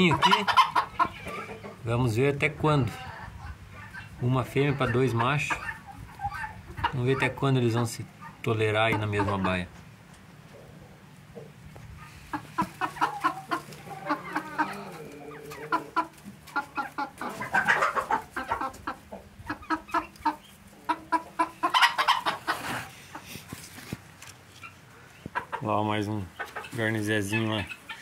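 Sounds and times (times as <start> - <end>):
chickens clucking: 0.0 - 28.0.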